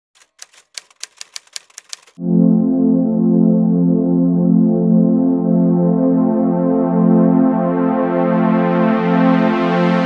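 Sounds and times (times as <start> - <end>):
typewriter key clicks: 0.2 - 2.2.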